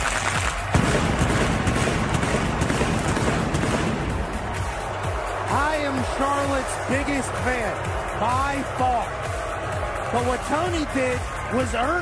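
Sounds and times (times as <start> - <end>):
pyrotechnics crackling bangs: 0.0 - 4.3
entrance music: 0.0 - 12.0.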